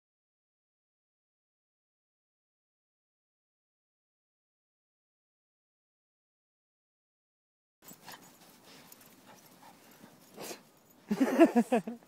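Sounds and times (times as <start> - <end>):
person laughing loudly: 11.1 - 12.0.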